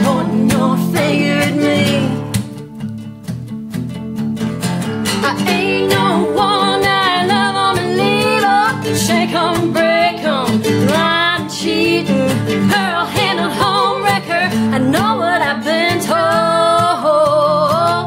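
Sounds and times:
person singing: 0:00.0 - 0:02.5, 0:05.2 - 0:18.0
acoustic guitar strumming: 0:00.0 - 0:18.0.

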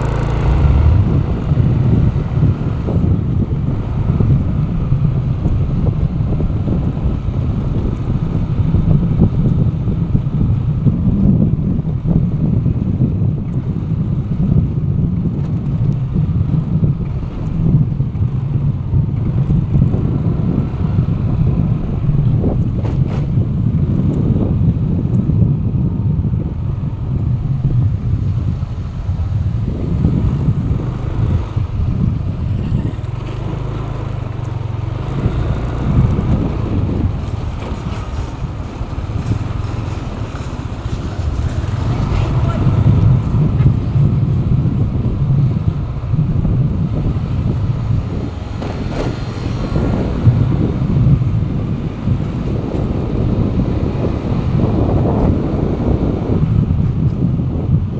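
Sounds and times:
road and engine noise: 0:00.0 - 0:57.9
wind buffeting microphone: 0:00.0 - 0:57.9.

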